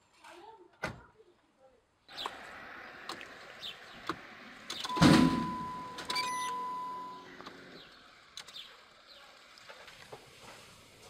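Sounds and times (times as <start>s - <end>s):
car engine starting: 2.1s - 10.9s.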